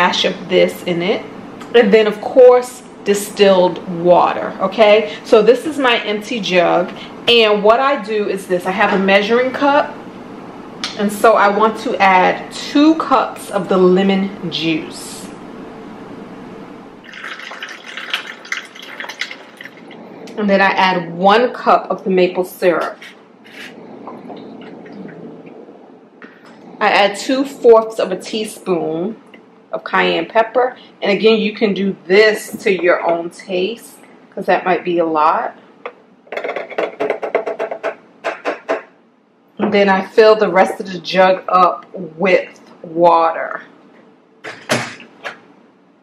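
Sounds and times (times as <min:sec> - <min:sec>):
liquid pouring into cup: 0:17.0 - 0:20.1.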